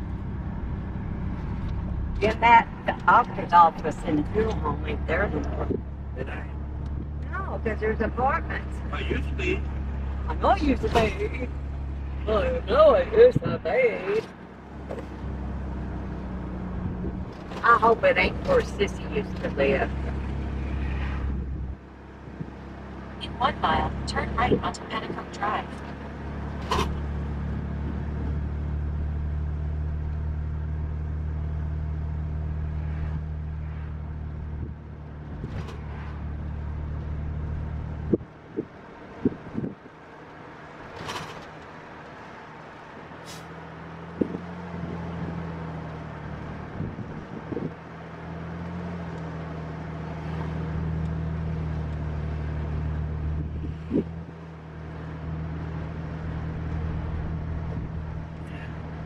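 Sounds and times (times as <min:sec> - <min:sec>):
car engine and road drone: 0:00.0 - 0:59.0.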